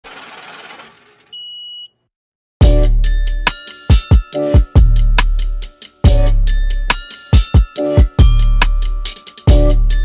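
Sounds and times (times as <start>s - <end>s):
high beep: 1.4s - 2.0s.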